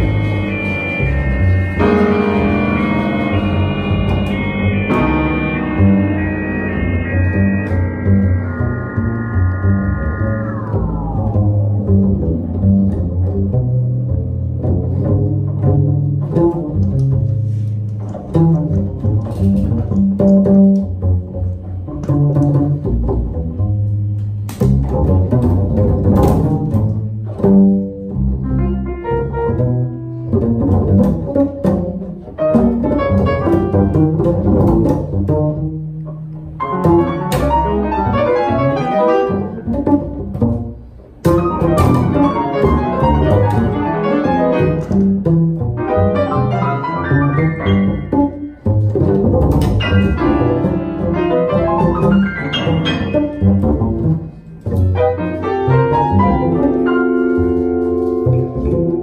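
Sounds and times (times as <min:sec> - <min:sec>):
piano: 0:00.0 - 0:59.0
plucked double bass: 0:00.0 - 0:59.0.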